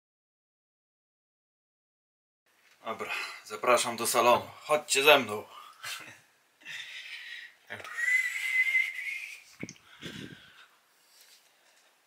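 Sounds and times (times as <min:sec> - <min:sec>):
high whistling tone: 0:07.8 - 0:10.4.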